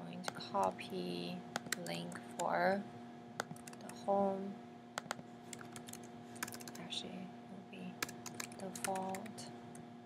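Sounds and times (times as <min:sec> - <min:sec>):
faint steady hum: 0:00.0 - 0:10.0
typing on computer keyboard: 0:01.6 - 0:01.9, 0:03.4 - 0:04.0, 0:05.0 - 0:06.8, 0:08.0 - 0:09.4.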